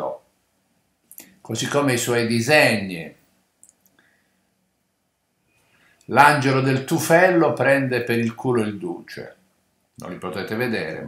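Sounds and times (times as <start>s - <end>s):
man speaking: 0.0s - 0.2s, 1.4s - 3.2s, 6.1s - 9.4s, 10.0s - 11.0s.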